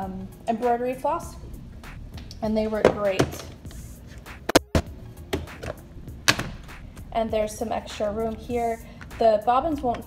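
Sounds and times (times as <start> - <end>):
plastic lid opening: 4.5 - 6.7.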